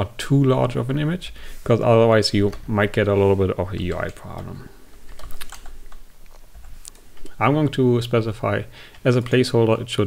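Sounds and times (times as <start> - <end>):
computer keyboard typing: 3.7 - 7.3.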